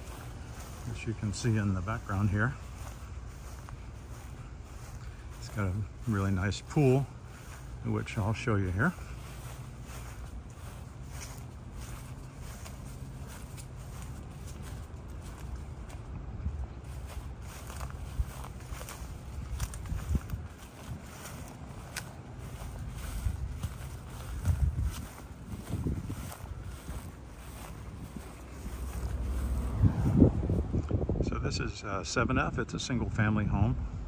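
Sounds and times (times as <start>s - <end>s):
footsteps on grass: 0.0s - 31.1s
wind rumbling on microphone: 0.0s - 34.0s.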